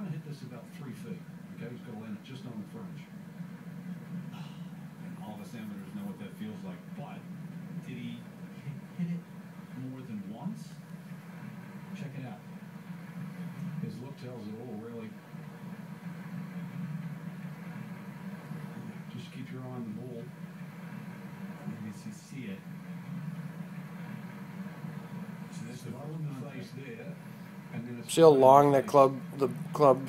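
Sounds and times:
faint television commentary: 0.0 - 30.0
steady low hum: 0.0 - 30.0.

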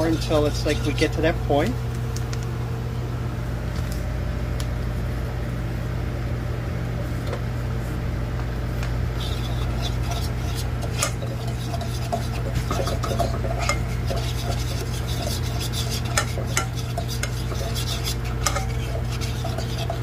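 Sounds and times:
fork scraping saucepan: 0.0 - 1.2, 9.2 - 20.0
fork clinking against pan: 18.3 - 19.0.

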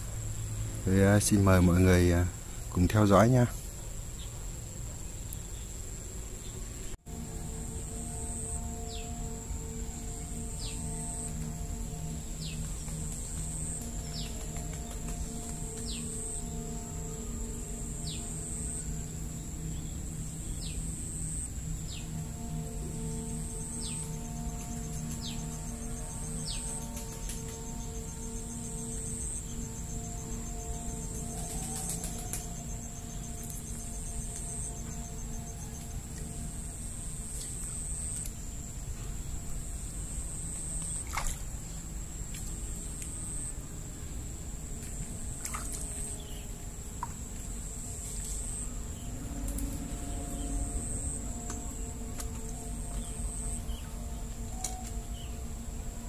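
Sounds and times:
music of sustained notes: 0.0 - 56.0.

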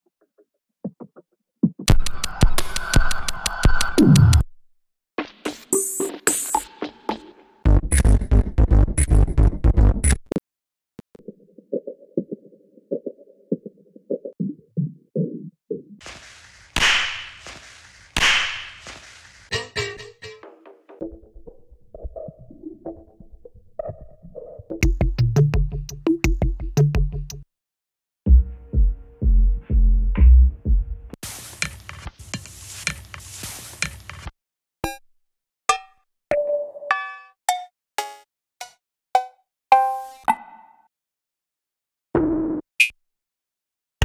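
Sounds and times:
cowbell hits: 19.5 - 20.4
percussion loop: 19.5 - 20.7, 24.8 - 27.4.

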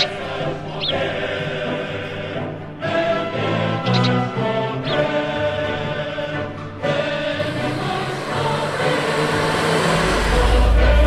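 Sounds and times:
choir and orchestra performing: 0.0 - 11.0
deep low rumble: 7.4 - 11.0.

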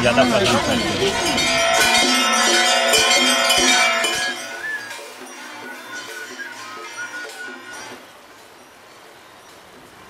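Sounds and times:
sharp clinks: 0.0 - 8.0
metal bells ringing: 0.0 - 9.1.

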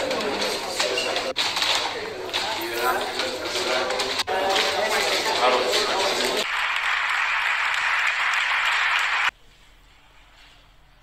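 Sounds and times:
audience applauding: 4.0 - 9.3.

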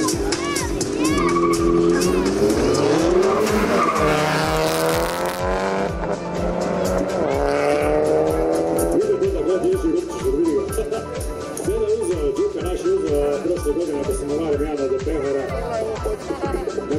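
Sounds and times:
car engines revving hard: 0.0 - 14.6
background music: 0.0 - 16.9
tyre squeal: 1.1 - 2.2.

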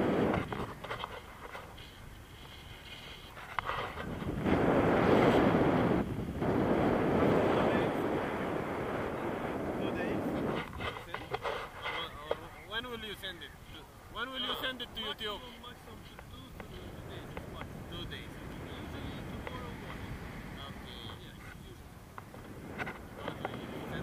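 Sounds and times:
wind noise on microphone: 0.0 - 24.0.

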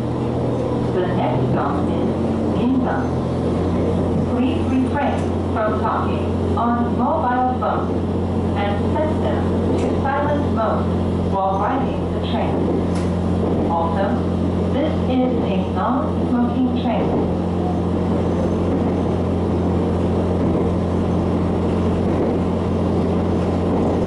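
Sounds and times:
railcar engine low hum: 0.0 - 24.0.

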